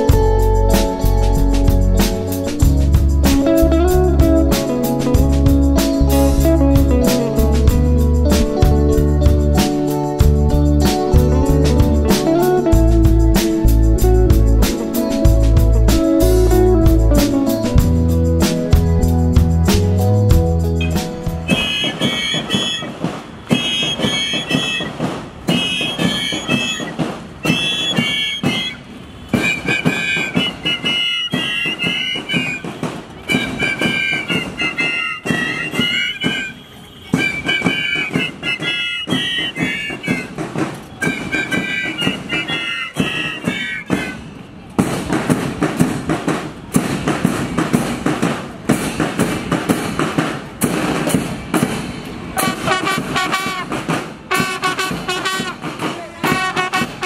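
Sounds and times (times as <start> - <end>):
high wind pipes playing a tune: 0.0 - 44.7, 52.4 - 57.0
steady drumming: 0.0 - 57.0.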